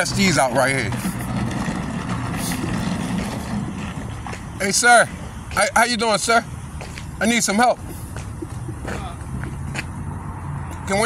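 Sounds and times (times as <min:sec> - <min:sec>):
vehicle engine idling: 0:00.0 - 0:10.2.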